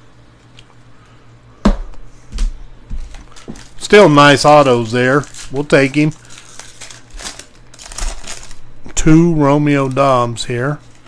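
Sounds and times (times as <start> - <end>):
foil wrapper crinkling: 3.0 - 11.0.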